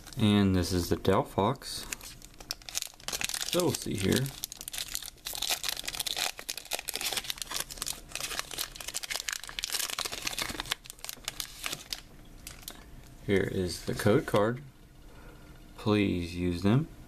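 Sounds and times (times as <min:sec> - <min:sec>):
foil wrapper crinkling and tearing: 0:01.8 - 0:12.8.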